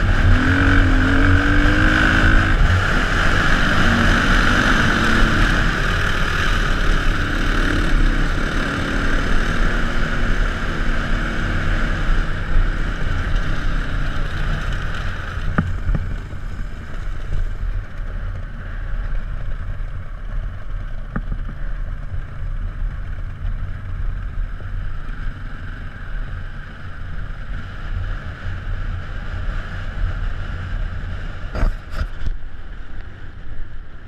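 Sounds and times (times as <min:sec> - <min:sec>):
motorcycle engine running: 0:00.0 - 0:34.0.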